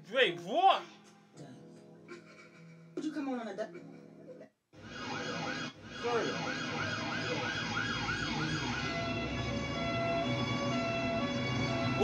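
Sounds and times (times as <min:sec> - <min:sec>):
siren sweeping up and down: 0:04.8 - 0:12.0.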